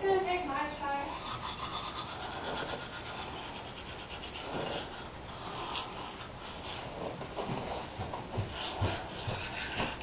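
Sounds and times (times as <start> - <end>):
toothbrush scrubbing teeth: 0.8 - 10.0.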